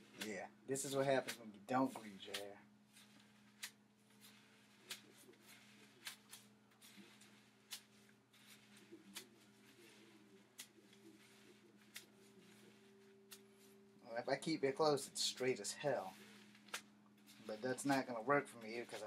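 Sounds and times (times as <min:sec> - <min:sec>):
comb clicking through wet hair: 0:00.0 - 0:13.8, 0:15.2 - 0:19.0
faint steady low hum: 0:00.0 - 0:19.0.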